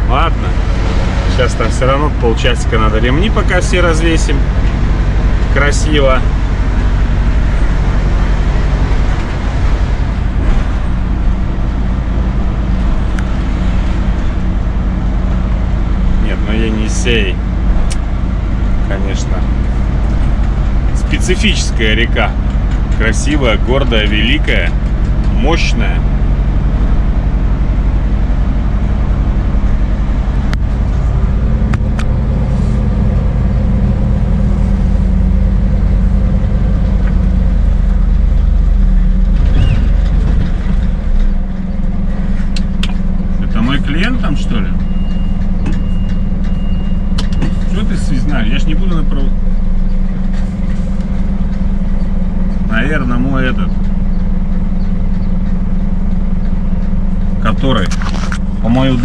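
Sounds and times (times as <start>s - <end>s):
truck diesel engine running: 0.0s - 59.0s.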